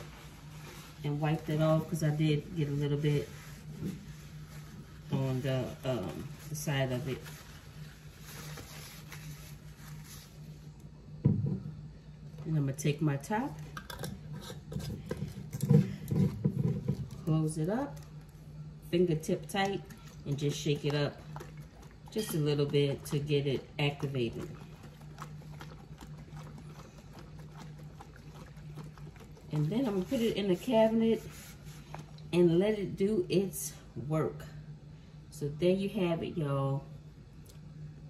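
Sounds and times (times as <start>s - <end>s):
paper towel rustling: 0.0s - 10.7s, 29.6s - 32.2s
steady low hum: 0.0s - 38.0s
liquid sloshing in a jar: 13.6s - 18.2s, 19.2s - 32.4s.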